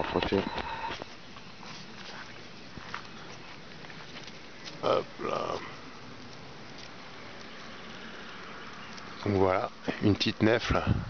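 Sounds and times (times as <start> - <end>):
footsteps through grass and leaves: 0.0 - 10.6
soft crackles: 0.0 - 11.0.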